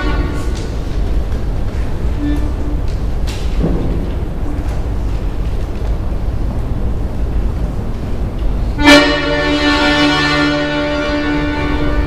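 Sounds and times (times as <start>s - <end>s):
button accordion notes: 8.8s - 12.0s.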